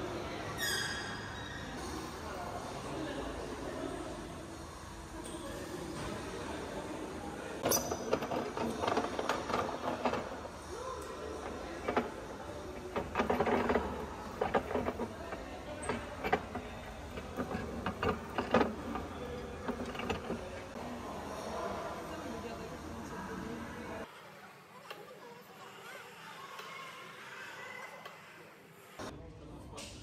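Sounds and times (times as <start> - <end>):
hand-cranked mill grinding grain: 7.6 - 20.8.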